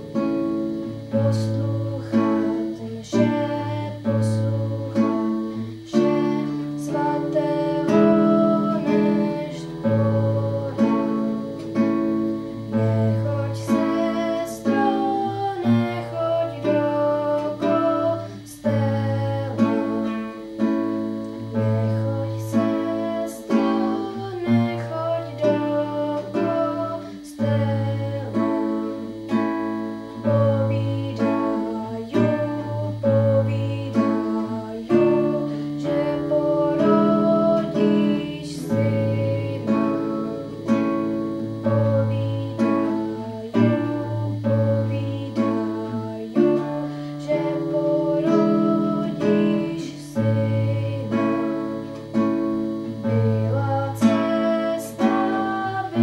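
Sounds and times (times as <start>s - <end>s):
classical guitar chords: 0.0s - 56.0s
girl singing: 0.0s - 56.0s.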